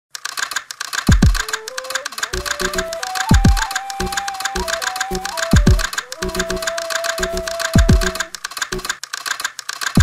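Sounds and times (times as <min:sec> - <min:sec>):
fast even ticking: 0:00.5 - 0:10.0
thin tone stepping upward: 0:01.2 - 0:08.9.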